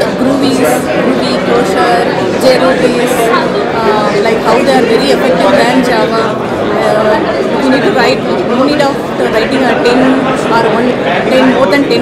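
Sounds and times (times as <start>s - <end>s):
crowd chatter in a hall: 0.0s - 12.0s
woman talking: 0.0s - 12.0s.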